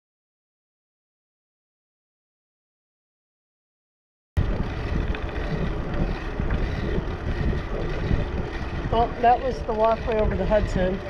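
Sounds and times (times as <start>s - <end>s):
wind buffeting microphone: 4.4s - 11.0s.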